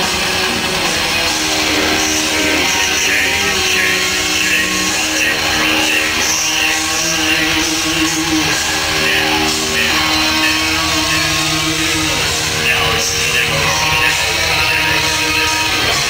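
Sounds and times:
distorted electric guitars: 0.0s - 16.0s
drums and cymbals: 0.0s - 16.0s.

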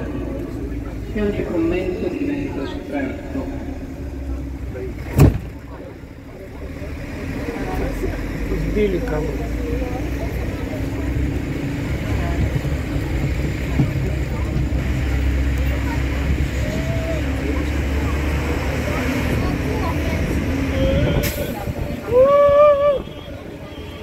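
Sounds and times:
distant traffic rumble: 0.0s - 24.0s
faint voices: 0.0s - 24.0s.

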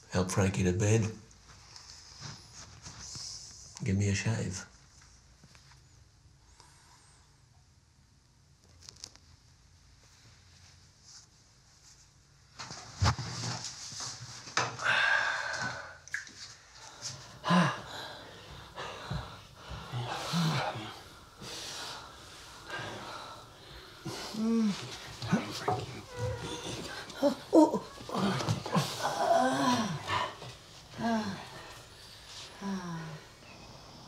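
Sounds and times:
person breathing heavily with snorts: 16.9s - 34.0s.

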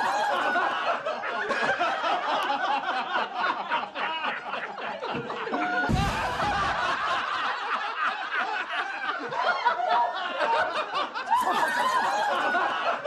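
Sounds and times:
audience laughter: 0.0s - 13.0s
low thud: 5.9s - 7.0s.

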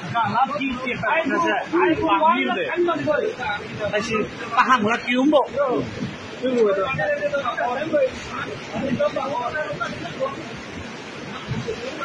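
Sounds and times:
rushing floodwater and rain: 0.0s - 12.0s
voices talking in background: 0.0s - 12.0s.

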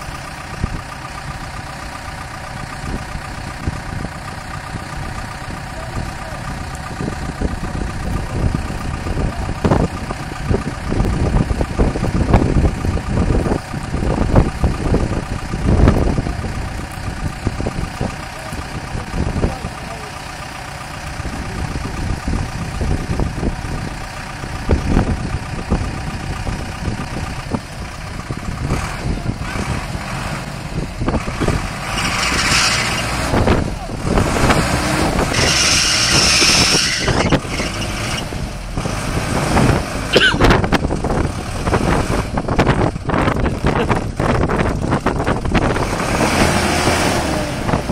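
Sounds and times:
minibus engine running: 0.0s - 47.9s
wind buffeting microphone: 2.6s - 19.9s, 20.8s - 47.9s.

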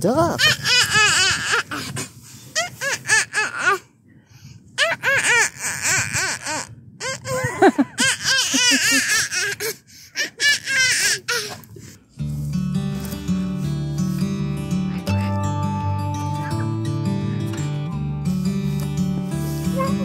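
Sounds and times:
toddler giggling: 4.8s - 11.6s
background music with held tones: 12.1s - 20.0s.

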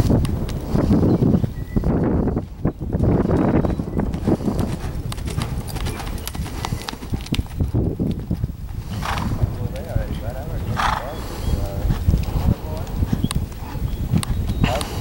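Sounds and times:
horse hoofbeats on dirt: 0.0s - 15.0s
horse breathy bursts: 8.7s - 9.5s, 10.6s - 13.9s, 14.6s - 15.0s.

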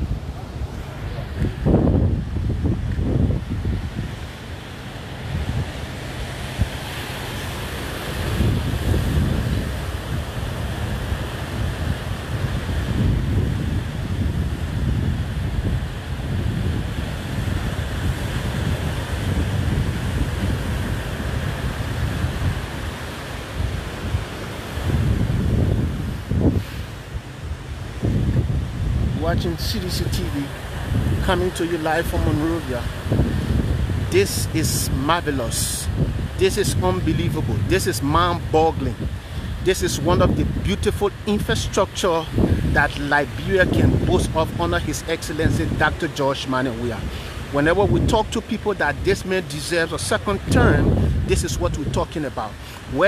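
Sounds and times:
sea surf: 0.0s - 53.0s
wind buffeting microphone: 0.0s - 53.0s.

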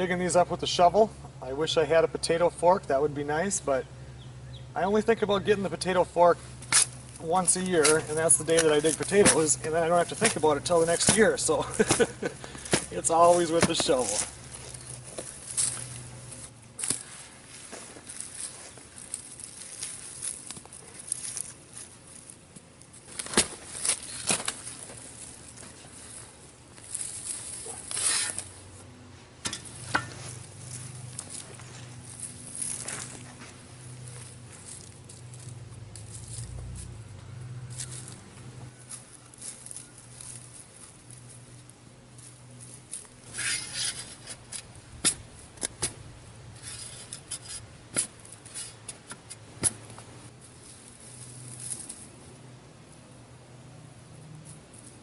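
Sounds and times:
hands digging in dry soil: 5.8s - 28.9s, 29.5s - 37.1s, 37.7s - 45.7s.

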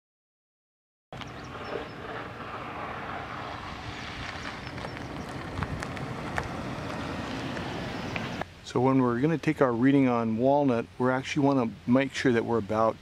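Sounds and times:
wind rumble on microphone: 1.2s - 8.4s
vehicle on road: 1.2s - 8.5s.

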